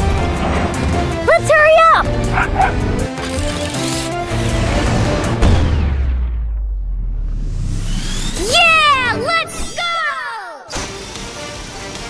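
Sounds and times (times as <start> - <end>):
background music: 0.0 - 12.0
cartoon dog barking: 2.3 - 2.8.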